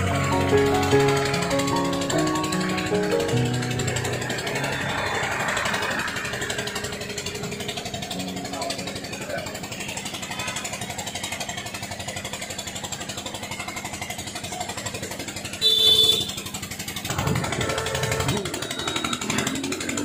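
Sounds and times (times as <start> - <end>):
small engine running: 0.0 - 20.0.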